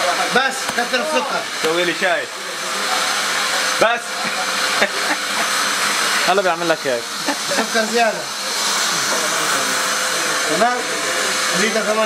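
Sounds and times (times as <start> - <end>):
electric tea maker hissing: 0.0 - 12.0.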